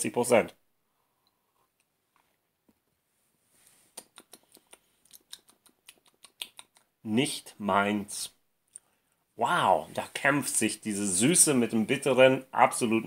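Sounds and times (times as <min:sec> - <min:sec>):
wet mouth clicks and lip smacks: 0:03.9 - 0:07.0.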